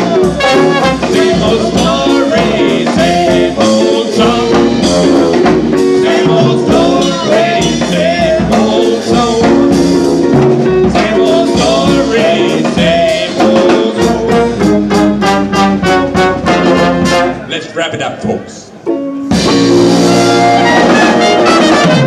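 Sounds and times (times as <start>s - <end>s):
men singing: 0.0s - 15.0s
jazz band playing: 0.0s - 22.0s.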